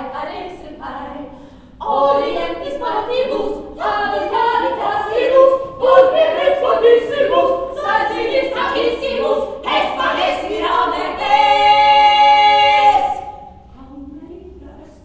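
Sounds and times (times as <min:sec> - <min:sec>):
women singing in harmony: 0:00.0 - 0:15.0.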